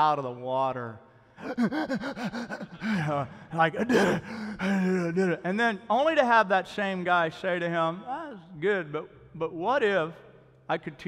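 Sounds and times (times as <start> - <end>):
man gasping for air: 1.4 - 5.3
breathless laughter: 1.4 - 5.5.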